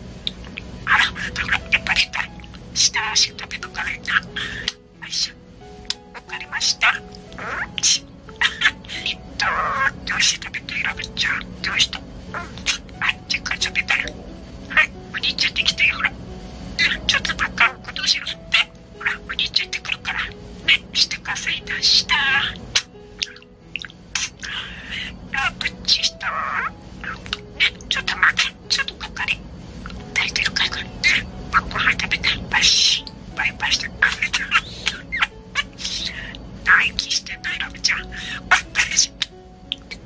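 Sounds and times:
buzzy bird note: 0.0s - 40.0s
budgerigar chattering: 0.2s - 40.0s.

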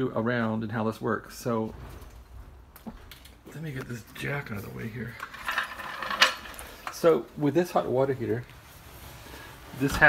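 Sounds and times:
metal floor jack rattling: 5.2s - 6.9s.

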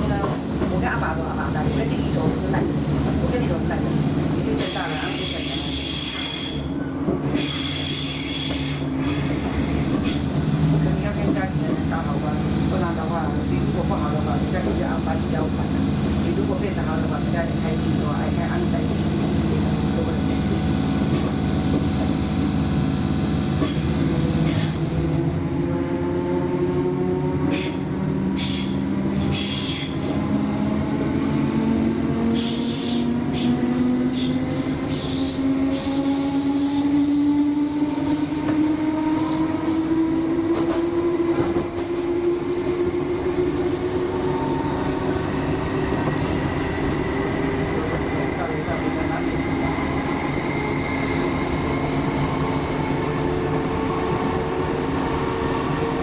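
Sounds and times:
murmur of passengers' voices: 0.0s - 8.0s, 10.0s - 22.3s, 42.7s - 54.9s
train running hum: 0.0s - 56.0s
train whine rising in pitch: 29.3s - 56.0s.

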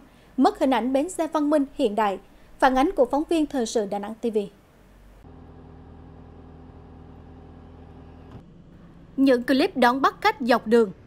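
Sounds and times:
vehicle engine idling: 6.6s - 10.4s.

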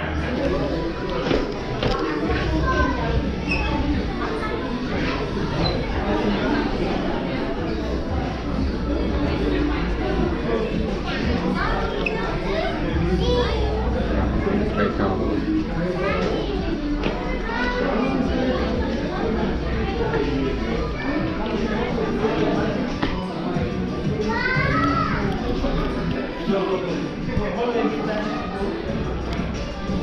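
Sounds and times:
murmur of voices in a hall: 0.0s - 30.0s
people talking: 0.0s - 30.0s.

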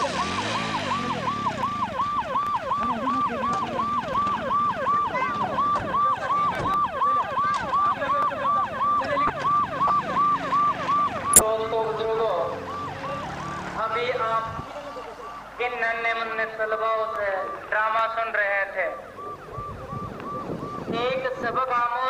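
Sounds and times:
pulsing electronic siren: 0.0s - 11.5s, 12.4s - 21.8s.

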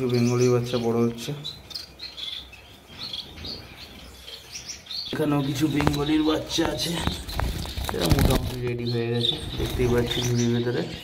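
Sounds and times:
finches chirping: 0.0s - 11.0s.

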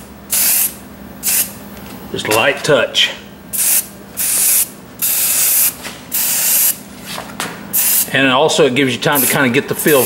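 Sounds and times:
spray paint can hissing: 3.6s - 6.8s, 7.8s - 8.1s, 9.2s - 10.0s.

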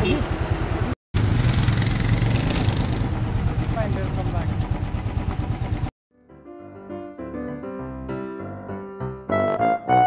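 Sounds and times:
motorcycle engine idling: 1.9s - 5.9s.

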